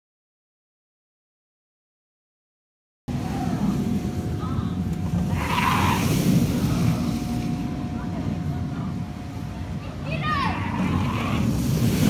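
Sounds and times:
roller coaster train rumbling: 3.1s - 12.0s.

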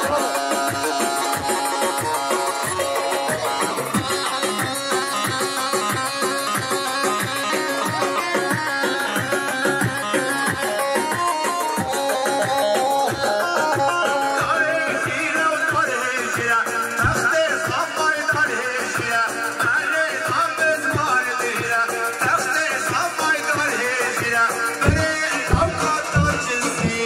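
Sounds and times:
ornamented dance melody: 0.1s - 19.6s, 23.4s - 27.0s
person singing: 13.5s - 27.0s
steady drum beat: 16.7s - 18.4s, 24.1s - 27.0s.

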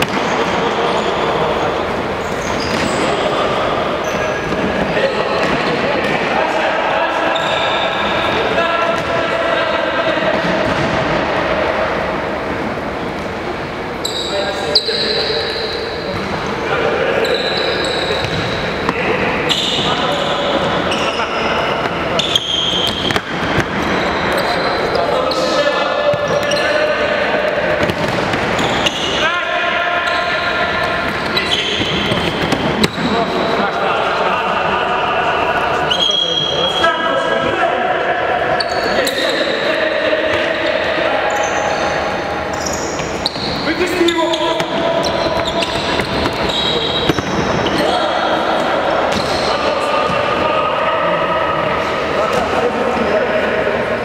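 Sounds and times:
players shouting: 16.6s - 54.0s.

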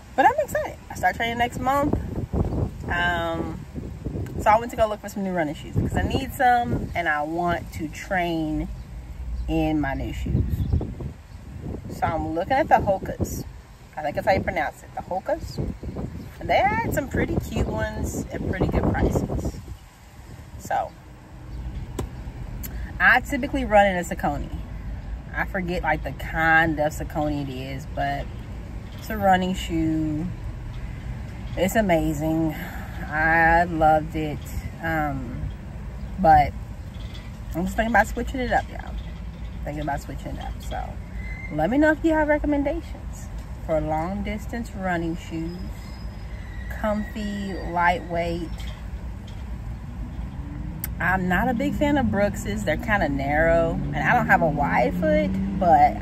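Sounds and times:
motor vehicle rumbling: 0.0s - 56.0s.

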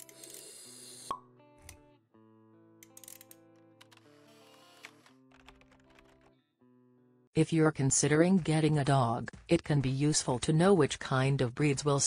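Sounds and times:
background music with held notes: 1.1s - 7.3s.

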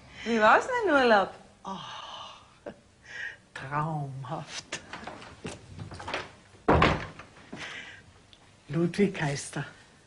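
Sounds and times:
door shutting with a thud: 5.8s - 7.4s.

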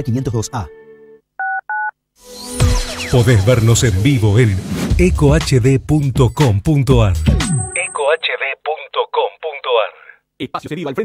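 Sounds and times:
radio station jingle: 2.2s - 10.2s
short electronic beeps: 7.5s - 8.2s.

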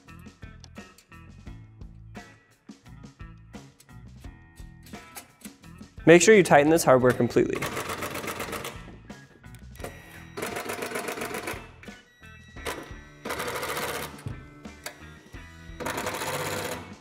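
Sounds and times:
quiet background music: 0.0s - 17.0s.

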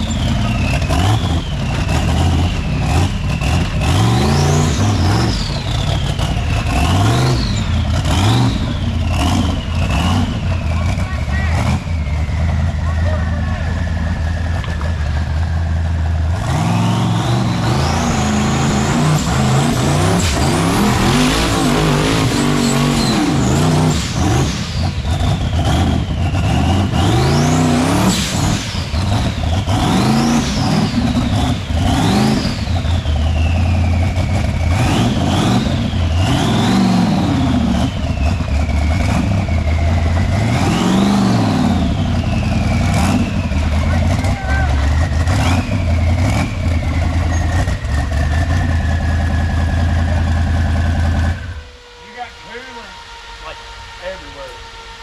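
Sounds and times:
engine revving hard: 0.0s - 55.0s.

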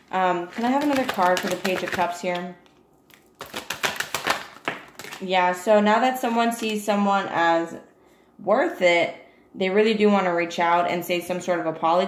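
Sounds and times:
cards being shuffled: 0.5s - 5.2s.

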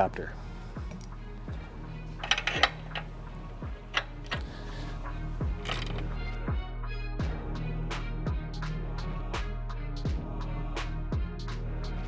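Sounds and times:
background music with steady beat: 0.0s - 12.0s
ratchet wrench clicking: 2.2s - 4.5s.

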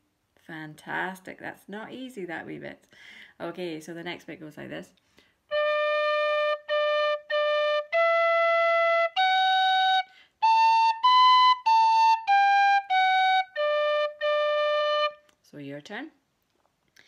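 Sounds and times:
tin whistle playing slow phrase: 5.5s - 15.2s.

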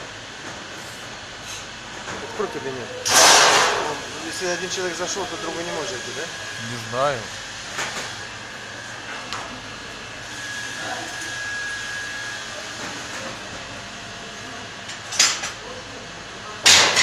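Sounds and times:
workshop background noise: 0.0s - 17.0s
sharp metallic clank: 3.1s - 3.9s.

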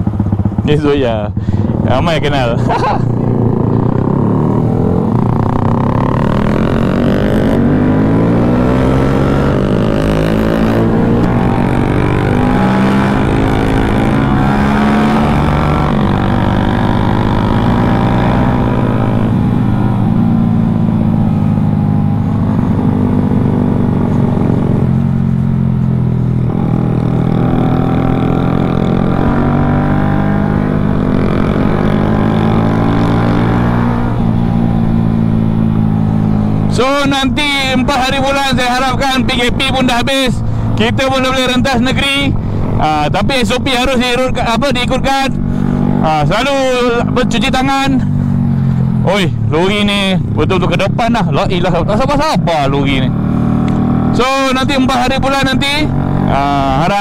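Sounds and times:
motorcycle engine accelerating: 0.0s - 57.0s.

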